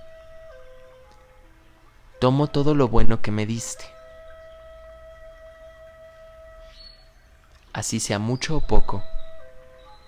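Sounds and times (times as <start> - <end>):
sustained bell-like tone: 2.5 - 7.4, 8.4 - 10.0.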